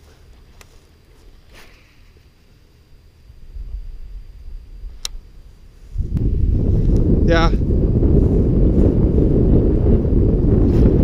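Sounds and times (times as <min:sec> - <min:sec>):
wind buffeting microphone: 0:03.4 - 0:11.0
sharp click: 0:05.0 - 0:05.2.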